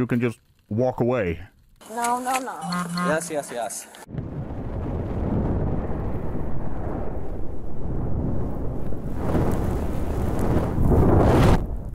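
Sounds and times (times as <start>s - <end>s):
low rumble and rush: 4.0s - 11.9s.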